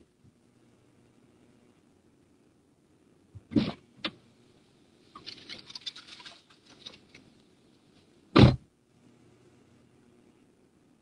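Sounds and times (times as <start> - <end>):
car door shutting: 8.4 - 8.6.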